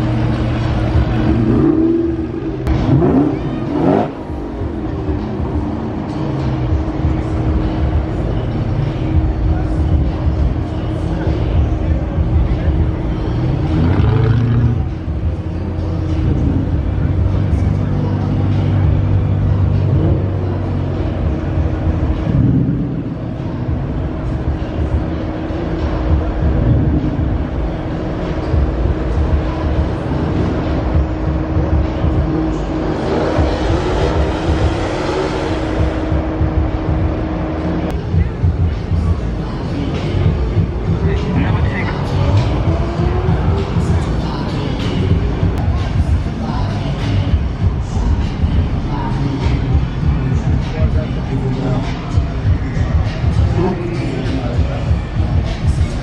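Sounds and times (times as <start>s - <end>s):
car engines rolling past slowly: 0.0s - 56.0s
crowd chatter: 0.0s - 56.0s.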